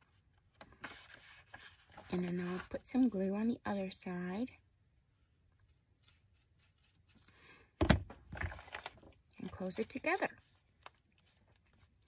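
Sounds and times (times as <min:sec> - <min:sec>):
paper pages rustling: 0:00.0 - 0:02.8, 0:08.3 - 0:12.0.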